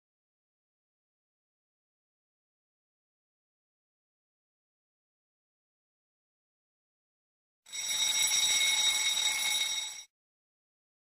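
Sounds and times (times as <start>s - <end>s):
alarm clock ringing: 7.7s - 10.1s.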